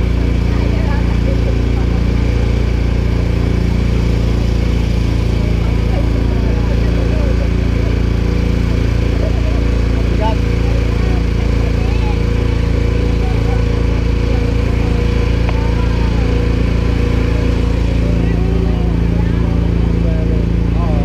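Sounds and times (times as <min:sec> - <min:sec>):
small engine running steadily: 0:00.0 - 0:21.0.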